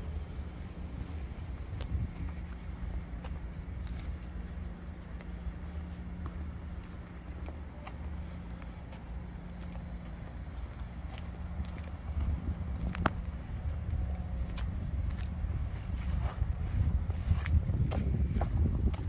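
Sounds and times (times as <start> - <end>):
engine idling: 0.0 - 17.3
light footsteps: 0.1 - 19.0.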